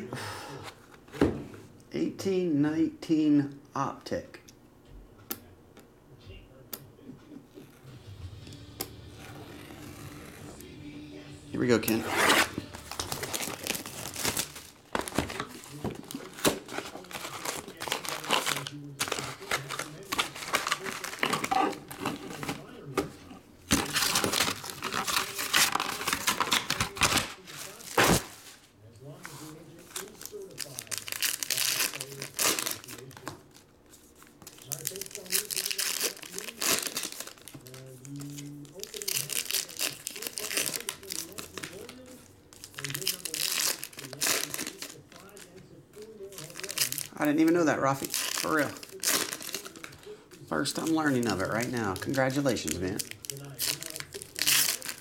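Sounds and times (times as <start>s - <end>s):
plastic wrap and foil packs crinkling: 11.7s - 55.0s.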